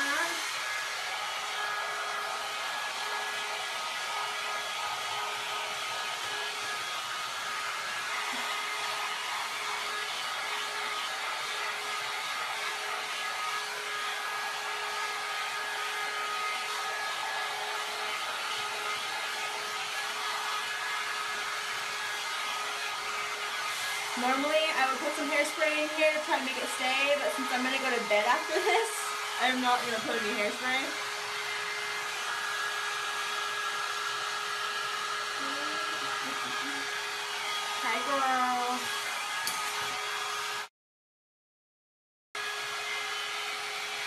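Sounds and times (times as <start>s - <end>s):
hot air brush blowing hiss: 0.0s - 4.0s, 5.0s - 22.0s, 22.6s - 34.2s, 34.8s - 40.0s.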